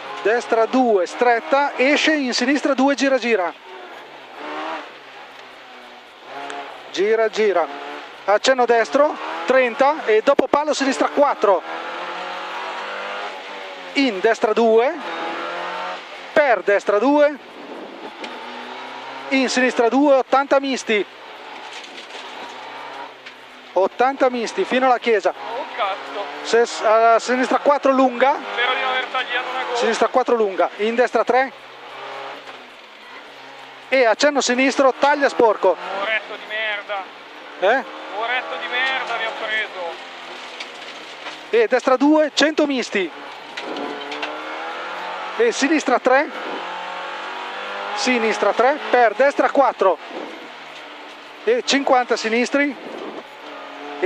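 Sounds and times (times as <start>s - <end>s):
rally car engine from cabin: 0.0s - 54.0s
road noise: 0.0s - 54.0s.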